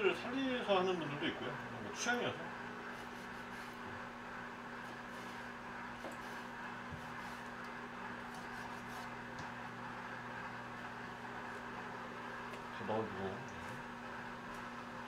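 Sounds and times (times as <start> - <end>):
microwave oven humming: 0.0 - 15.0.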